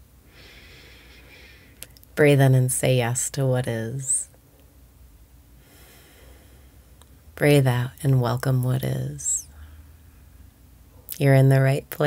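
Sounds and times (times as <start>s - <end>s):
woman breathing in: 0.3s - 1.8s, 5.6s - 7.0s.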